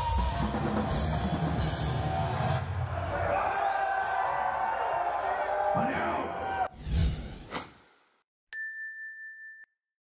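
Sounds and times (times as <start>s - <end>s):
bright ding: 8.6s - 9.8s.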